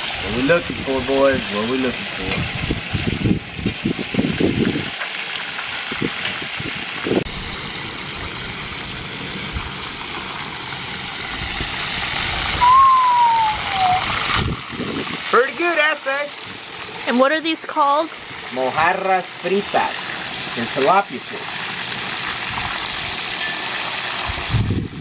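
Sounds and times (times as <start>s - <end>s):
oil sizzling around frying fish: 0.0s - 25.0s
falling tone: 12.4s - 14.5s.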